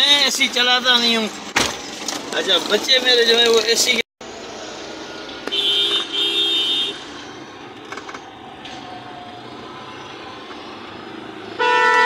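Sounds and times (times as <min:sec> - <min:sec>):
vehicle horns honking: 0:05.5 - 0:07.2, 0:11.6 - 0:12.0.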